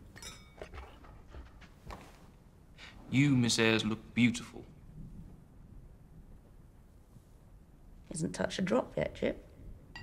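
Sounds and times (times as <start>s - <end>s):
glass clinking against glass: 0.1s - 0.7s.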